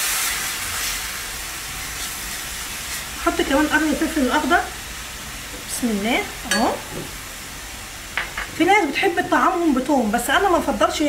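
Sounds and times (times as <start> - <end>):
onion sizzling in a pan: 0.0 - 11.0.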